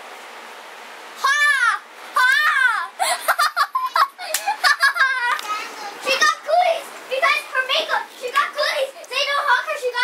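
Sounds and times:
boy laughing and squealing: 1.2s - 5.4s.

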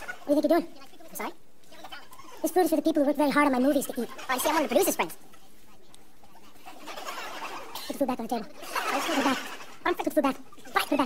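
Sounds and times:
faint background hiss: 0.0s - 11.0s
sped-up high-pitched voice: 7.8s - 11.0s.

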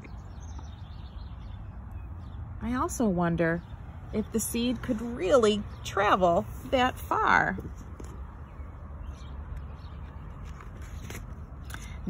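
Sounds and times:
paper page rustling: 10.0s - 12.0s.

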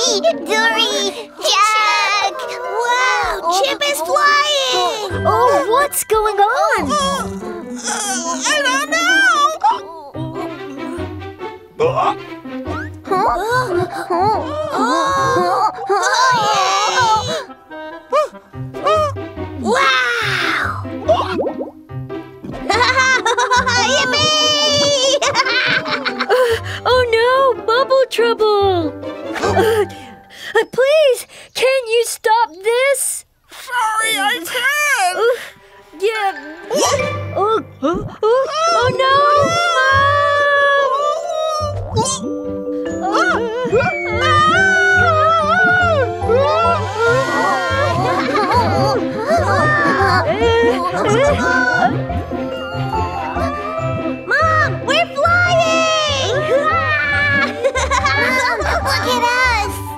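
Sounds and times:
background music: 0.0s - 30.9s, 34.0s - 59.9s
high-pitched cartoon whimpering: 6.7s - 11.1s, 11.8s - 17.5s, 43.0s - 51.6s
cartoon voice whimpering: 6.8s - 10.5s.

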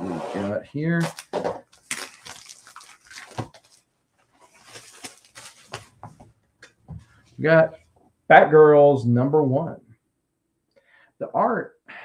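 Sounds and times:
plastic wrapping crinkling: 1.0s - 6.2s.

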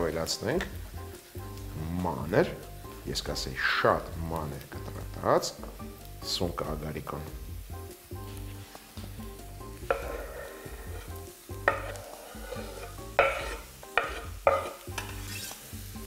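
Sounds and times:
food sizzling in frying pan: 0.0s - 16.0s
quiet background music: 0.0s - 16.0s
knife scraping wooden board: 11.8s - 15.6s.

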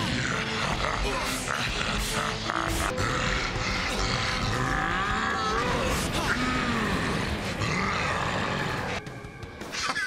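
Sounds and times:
deep monster growling: 0.0s - 9.0s.

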